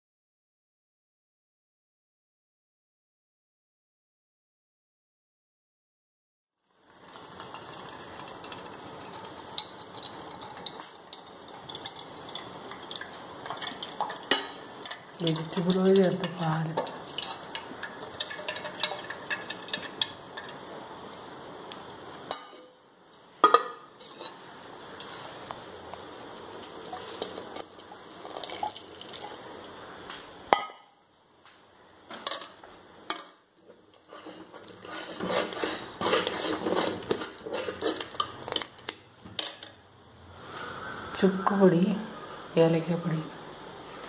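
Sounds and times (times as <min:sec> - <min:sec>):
metal ladle scraping a pot: 0:24.0 - 0:24.4, 0:33.1 - 0:38.6.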